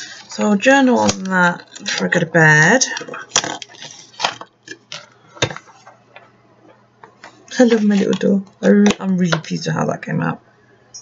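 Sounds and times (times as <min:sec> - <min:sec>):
paper rustling: 0:02.9 - 0:06.2, 0:07.2 - 0:08.4.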